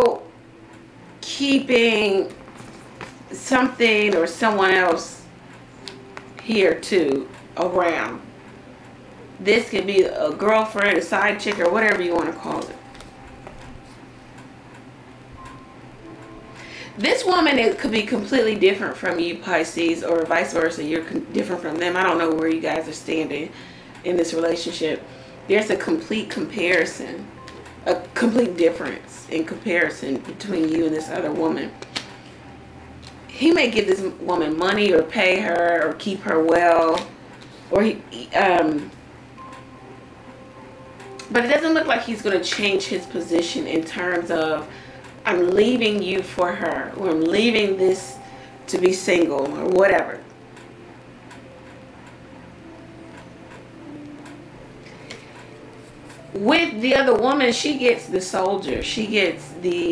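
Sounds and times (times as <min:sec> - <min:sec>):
low steady hum: 0:00.0 - 0:59.9
soft held chord music: 0:00.0 - 0:59.9.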